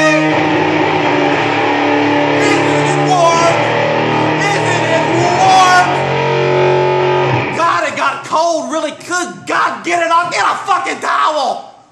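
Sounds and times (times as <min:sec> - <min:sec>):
strummed guitar chord ringing: 0:00.0 - 0:07.6
man's voice: 0:02.4 - 0:06.1, 0:07.5 - 0:11.8.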